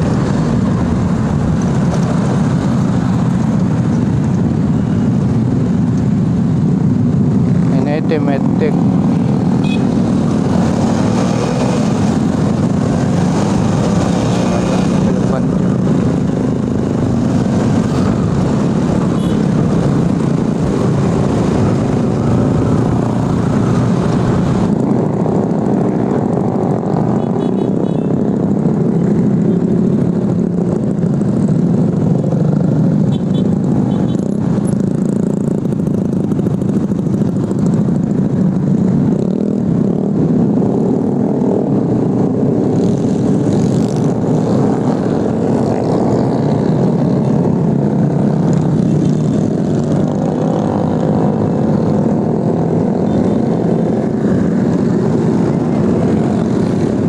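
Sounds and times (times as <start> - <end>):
motorcycle engine running: 0.0 - 57.0
other motorcycles: 0.0 - 57.0
wind and road noise: 0.0 - 57.0.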